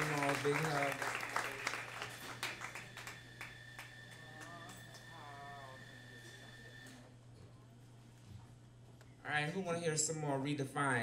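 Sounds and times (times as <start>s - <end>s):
audience applause: 0.0s - 4.9s
thin high whine: 0.0s - 7.1s
low electrical hum: 0.0s - 11.0s.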